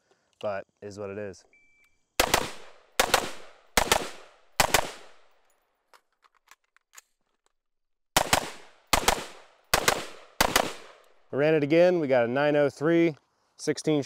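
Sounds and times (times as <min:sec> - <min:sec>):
rifle double shots: 0:02.2 - 0:05.2, 0:08.2 - 0:11.0.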